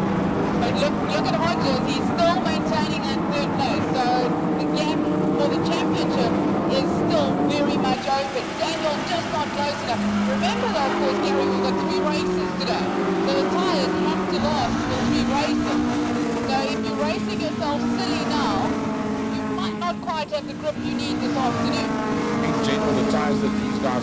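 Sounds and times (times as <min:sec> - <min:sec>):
race car engines droning: 0:00.0 - 0:24.0.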